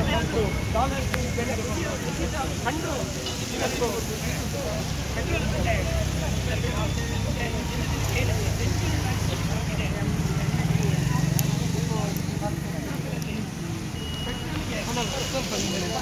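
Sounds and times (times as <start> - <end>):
crowd chatter: 0.0 - 16.0
road traffic rumble: 0.0 - 16.0.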